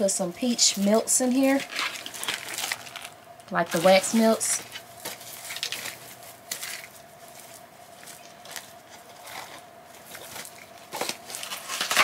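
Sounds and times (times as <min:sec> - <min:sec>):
packaging rustling: 0:00.4 - 0:12.0.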